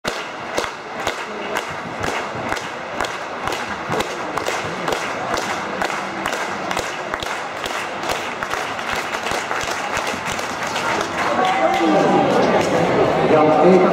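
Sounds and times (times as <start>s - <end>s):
spectators clapping in unison: 0.0s - 13.2s
hubbub of voices: 0.1s - 13.9s.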